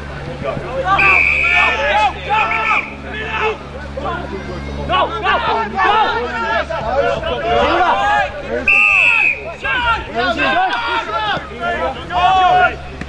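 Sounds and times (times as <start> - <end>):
voices shouting and calling: 0.0 - 13.0
short whistle blast: 1.0 - 1.7, 8.7 - 9.5.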